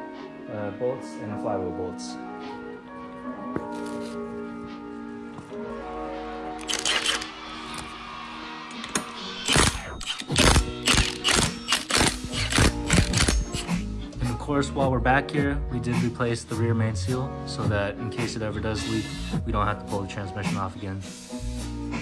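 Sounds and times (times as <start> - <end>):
background music: 0.0 - 22.0
impact wrench rattling: 6.6 - 7.3, 8.8 - 13.7.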